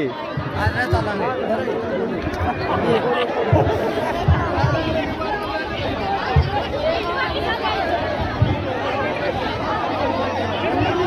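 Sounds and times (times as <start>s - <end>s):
crowd talking: 0.0s - 11.0s
dull low thumps: 3.4s - 9.7s.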